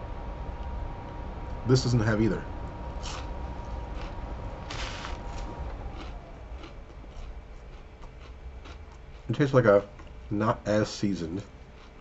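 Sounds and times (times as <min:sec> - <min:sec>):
low steady hum: 0:00.0 - 0:12.0
french fries being chewed: 0:03.0 - 0:10.2, 0:11.4 - 0:12.0.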